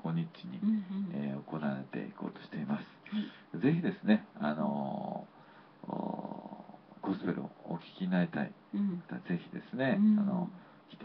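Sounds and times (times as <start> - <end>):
person making speech-like sounds: 0.4 - 1.4, 8.8 - 9.1.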